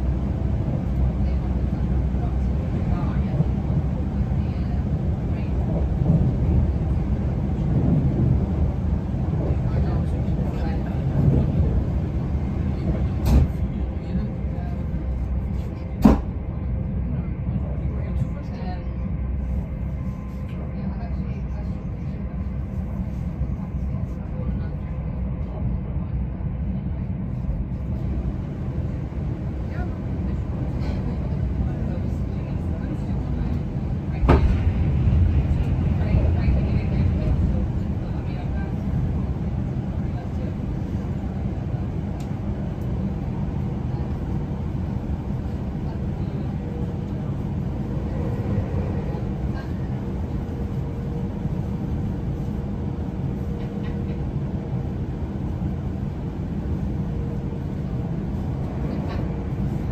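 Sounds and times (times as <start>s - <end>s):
train wheels rumbling on rail: 0.0s - 59.9s.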